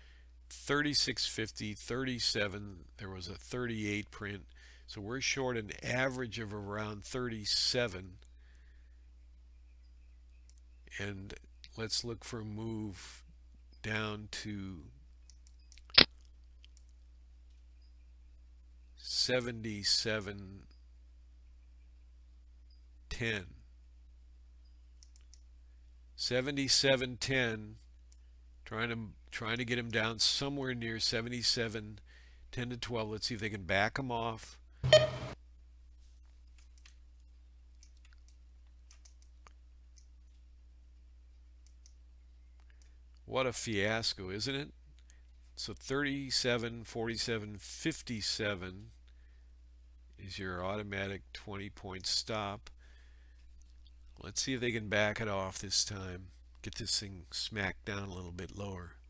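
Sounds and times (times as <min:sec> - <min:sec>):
faint low hum: 0:00.0 - 0:59.0
faint clicks: 0:15.1 - 0:17.7, 0:25.0 - 0:25.5, 0:36.4 - 0:40.5, 0:41.3 - 0:43.3.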